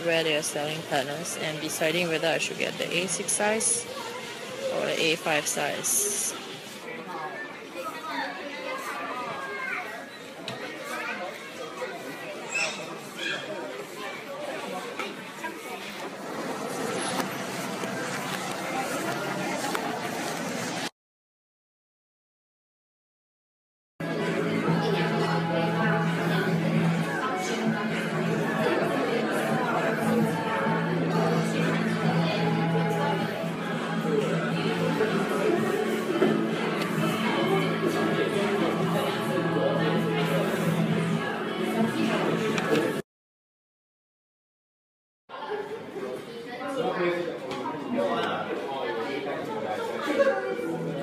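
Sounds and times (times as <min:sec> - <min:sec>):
indistinct chatter: 0:00.0 - 0:20.9, 0:24.0 - 0:43.0, 0:45.3 - 0:51.0
background music: 0:24.0 - 0:43.0.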